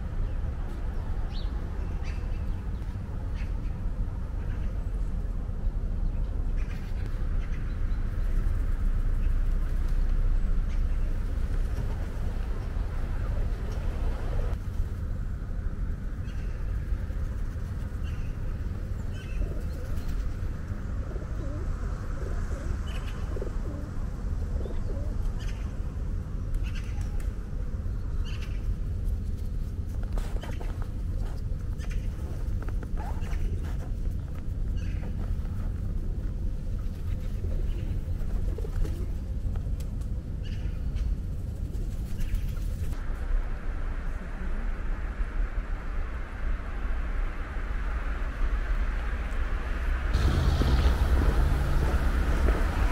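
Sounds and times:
steady low rumble: 0.0 - 52.9
pigeons cooing: 21.0 - 25.2.

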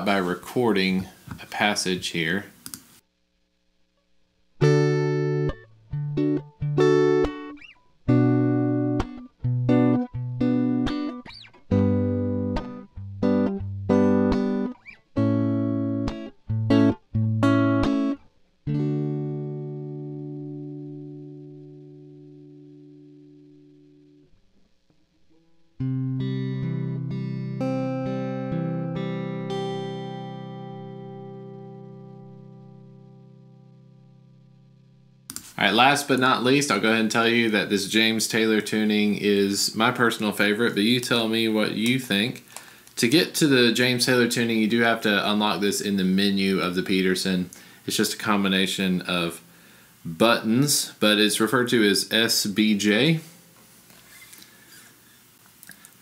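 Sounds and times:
electric guitar choppy chords: 4.6 - 24.2, 24.9 - 38.7.

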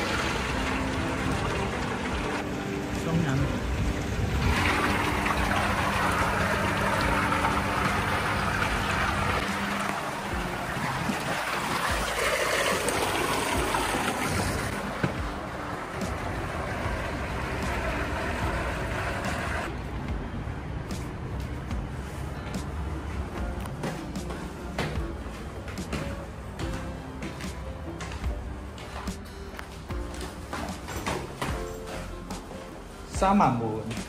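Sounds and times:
water churning in whirlpool tub: 0.0 - 19.7.

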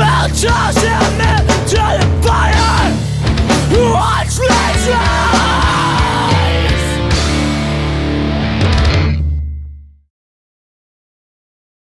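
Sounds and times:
drum hits: 0.0 - 9.4
electric guitar and bass ringing: 0.0 - 10.0.

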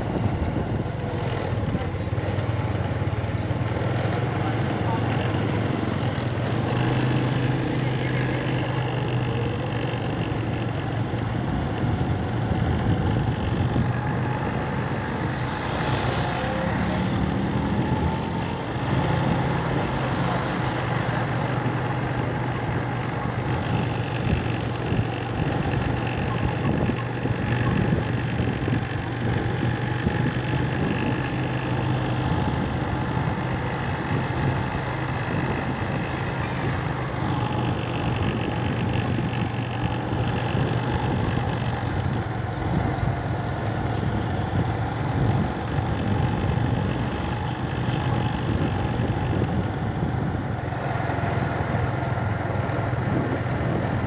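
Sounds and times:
road noise: 0.0 - 54.0
vehicle engine running: 0.0 - 54.0.

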